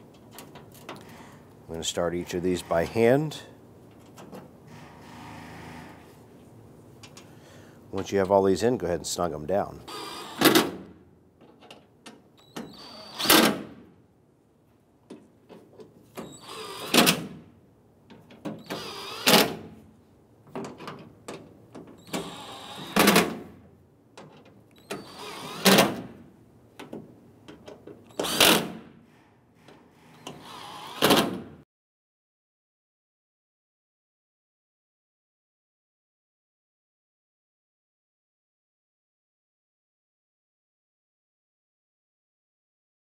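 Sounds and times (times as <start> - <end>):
power drill bursts: 18.6 - 19.5, 22.0 - 23.1.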